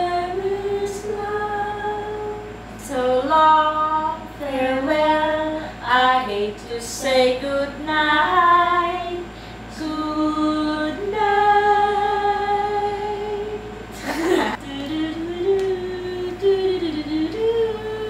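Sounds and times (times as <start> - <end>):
women singing unaccompanied: 0.0 - 18.0.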